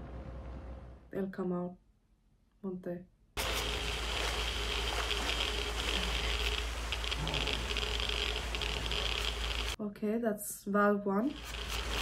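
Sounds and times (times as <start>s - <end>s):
dosimeter crackling: 3.4s - 9.8s, 11.3s - 12.0s
low hum: 3.4s - 9.8s.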